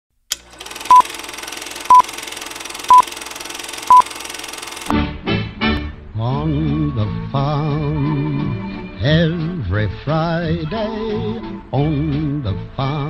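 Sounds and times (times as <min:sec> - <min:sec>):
short high beeps: 0:00.9 - 0:01.1, 0:01.9 - 0:02.1, 0:02.9 - 0:03.1, 0:03.9 - 0:04.1.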